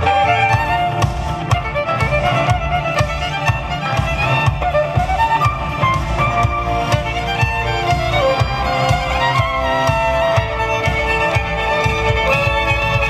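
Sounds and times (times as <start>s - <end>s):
deep bass line: 0.0s - 13.0s
steady beat: 0.0s - 13.0s
violins playing rock tune: 0.0s - 13.0s.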